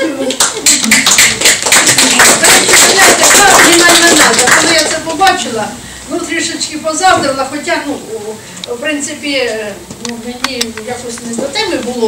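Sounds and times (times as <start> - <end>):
audience applauding: 0.2 - 5.1
woman's voice: 2.0 - 12.0.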